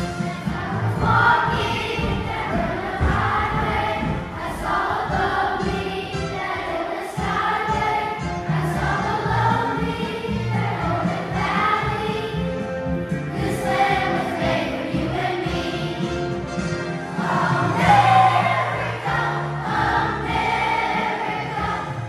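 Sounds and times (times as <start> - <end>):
children's choir singing: 0.0 - 22.0.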